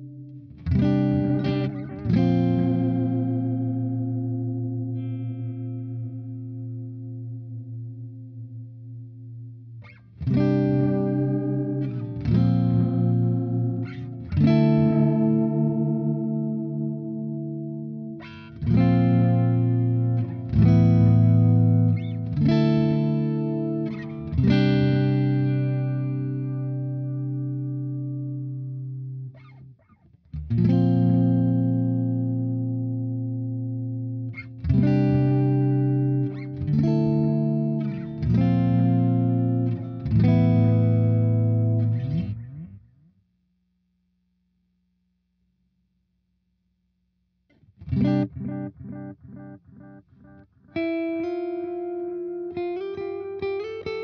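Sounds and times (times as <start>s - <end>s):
electric guitar chords with delay: 0.0s - 29.5s, 30.4s - 42.9s, 47.7s - 54.0s.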